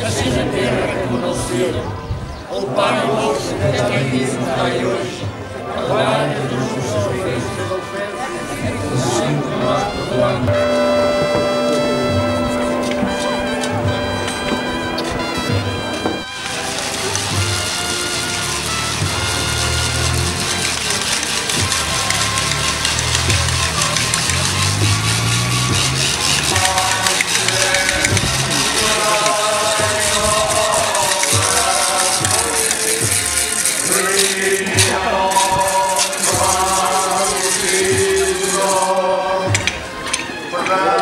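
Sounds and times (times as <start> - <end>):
group of voices singing a hymn: 0.0 - 16.2, 25.8 - 41.0
music with low sustained notes: 8.4 - 33.9.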